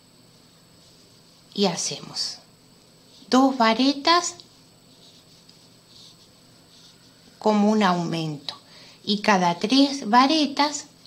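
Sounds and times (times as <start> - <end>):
soft rustles of yarn: 0.3 - 8.6.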